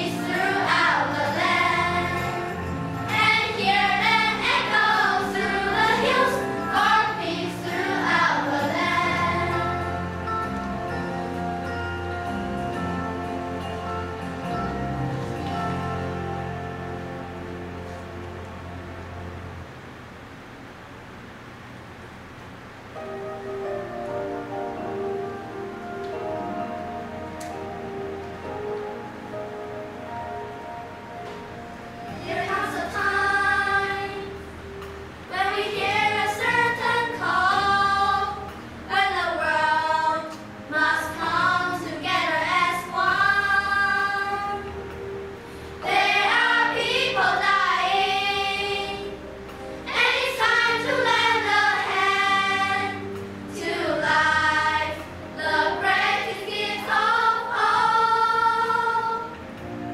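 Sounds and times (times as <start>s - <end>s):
children's choir singing: 0.0s - 11.8s, 32.1s - 34.5s, 35.2s - 44.9s, 45.8s - 59.7s.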